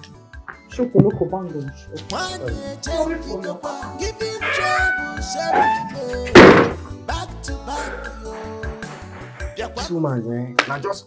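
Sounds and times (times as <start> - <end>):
background music: 0.0 - 11.0
door slamming shut: 4.5 - 6.8.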